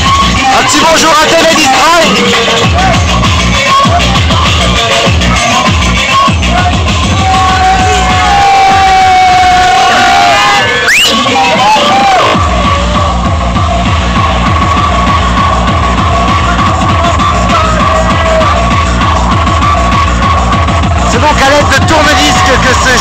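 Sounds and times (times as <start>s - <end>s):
loud techno music: 0.0s - 23.0s.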